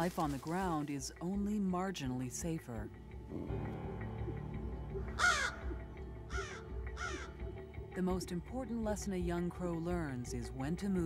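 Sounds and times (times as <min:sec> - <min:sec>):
soft background music: 0:00.0 - 0:11.0
crow cawing: 0:05.1 - 0:07.4.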